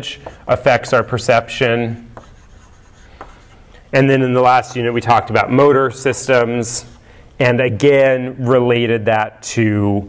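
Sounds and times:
chalk taps: 0.0 - 5.0
chalk scratching on blackboard: 0.0 - 5.3.

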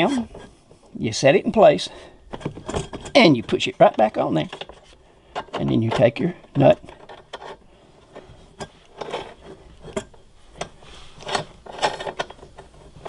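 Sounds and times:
small metal clicks and scrapes: 2.3 - 13.0.

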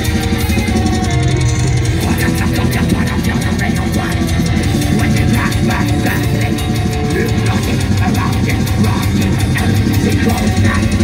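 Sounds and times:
distorted electric guitar: 0.0 - 11.0
fast drumming: 0.0 - 11.0
harsh voice singing: 0.0 - 11.0
keyboards: 0.0 - 11.0.

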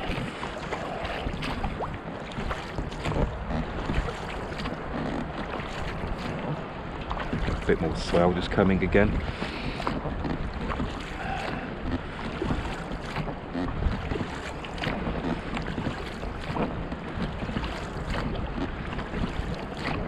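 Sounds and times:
oar splashes: 0.0 - 20.0
water slapping against hull: 0.0 - 20.0
wind buffeting microphone: 0.0 - 20.0.

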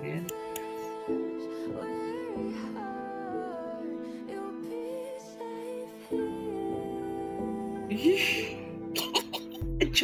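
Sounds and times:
soft background music: 0.0 - 10.0
man laughing: 9.0 - 9.8.

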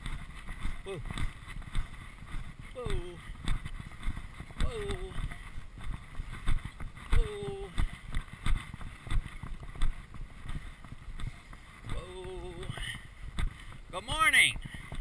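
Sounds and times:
horse hoofbeats on dirt: 0.0 - 15.0.

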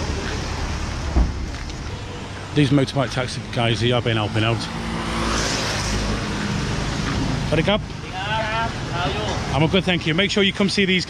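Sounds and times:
traffic engine hum: 0.0 - 11.0.

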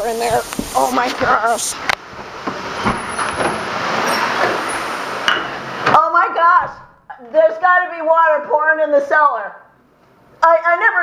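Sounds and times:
person speaking: 0.0 - 1.8
water running off roof: 0.0 - 5.8
heavy rain pouring: 0.0 - 5.9.

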